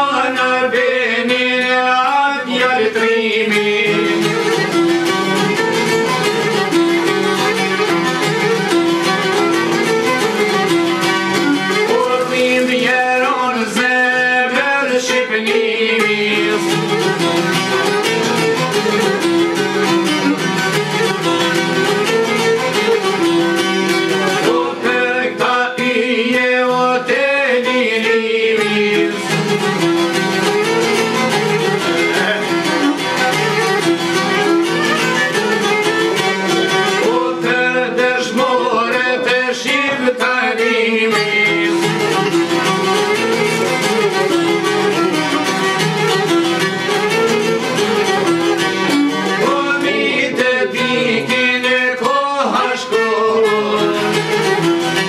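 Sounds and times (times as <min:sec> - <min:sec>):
man singing: 0:00.0 - 0:04.7, 0:11.7 - 0:17.1, 0:24.3 - 0:29.4, 0:31.8 - 0:33.3, 0:36.5 - 0:42.1, 0:49.2 - 0:54.5
plucked lute: 0:00.0 - 0:55.0
violin playing melody: 0:03.0 - 0:13.1, 0:15.0 - 0:25.9, 0:27.5 - 0:55.0.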